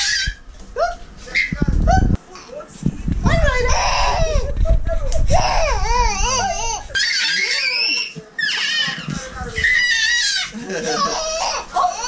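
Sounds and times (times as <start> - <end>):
baby squealing: 5.4 - 12.0.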